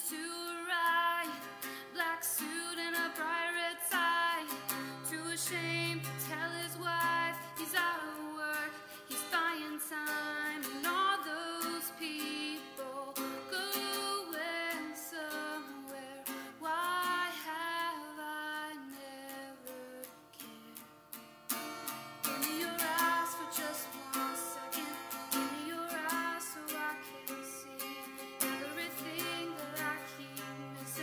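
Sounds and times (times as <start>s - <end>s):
person singing: 0.0s - 20.2s, 22.3s - 31.0s
plucked acoustic guitar: 0.0s - 31.0s.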